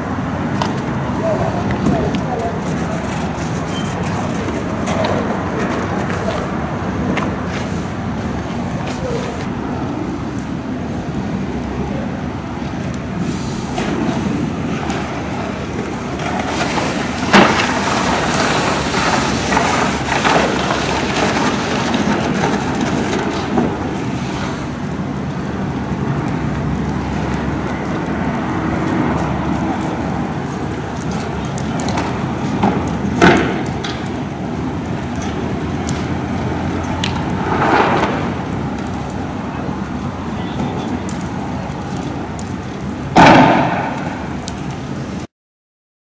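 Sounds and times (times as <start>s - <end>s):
heavy vehicle engines running: 0.0s - 45.3s
street noise: 0.0s - 45.3s
sharp bang: 43.2s - 44.0s.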